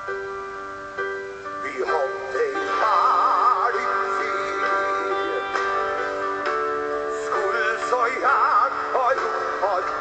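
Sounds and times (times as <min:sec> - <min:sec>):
male vocal with vibrato: 0:01.6 - 0:05.6, 0:07.1 - 0:10.0.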